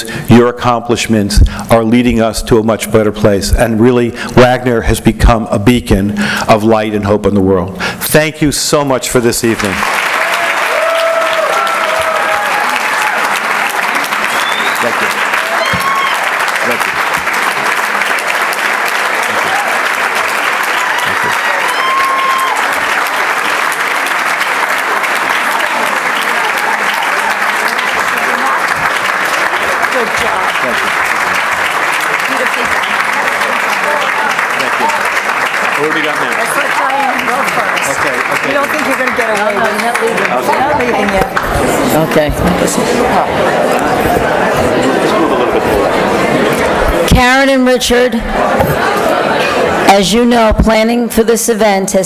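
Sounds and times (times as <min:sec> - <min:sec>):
audience applauding: 0:09.4 - 0:47.1.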